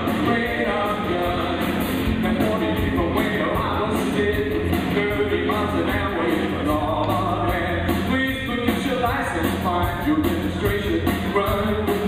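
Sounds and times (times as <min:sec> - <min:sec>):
man singing: 0:00.0 - 0:12.0
rock band playing live: 0:00.0 - 0:12.0.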